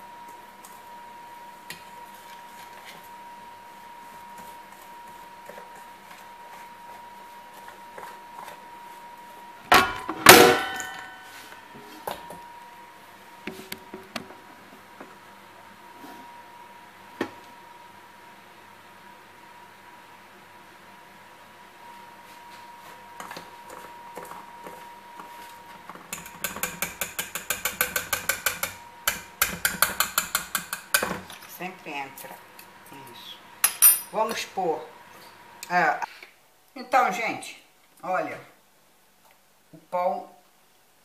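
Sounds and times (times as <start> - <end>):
whisk tapping in metal bowl: 26.1 - 31.1.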